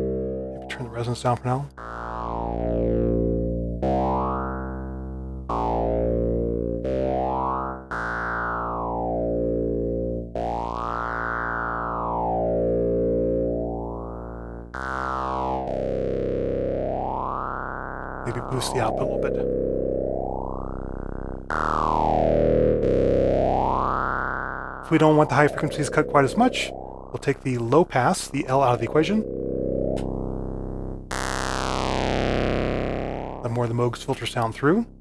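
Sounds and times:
synthesizer notes with phaser sweep: 0:00.0 - 0:35.0.

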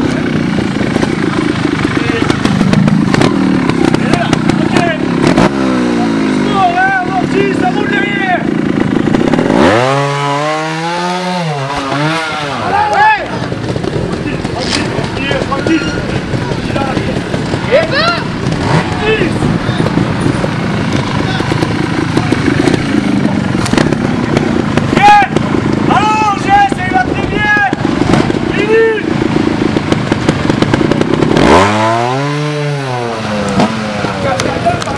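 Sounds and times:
motorcycle engine revving: 0:00.0 - 0:34.9
voices calling out: 0:11.4 - 0:29.2.

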